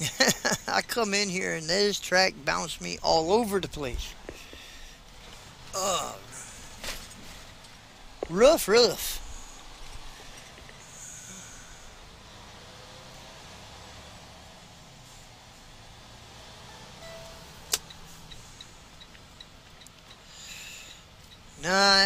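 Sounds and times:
truck engine running: 0:00.0 - 0:22.0
faint evenly spaced ticks: 0:16.6 - 0:22.0
sharp click: 0:17.7 - 0:18.4.

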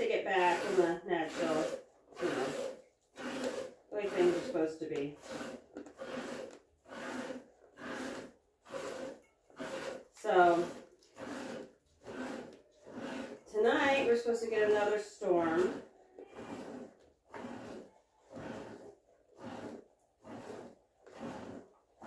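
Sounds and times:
milk squirting into metal pail: 0:00.0 - 0:22.0.

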